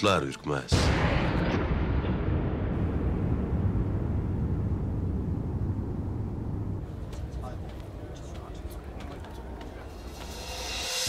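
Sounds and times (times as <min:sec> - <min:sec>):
low dense rumble: 0:01.6 - 0:10.4.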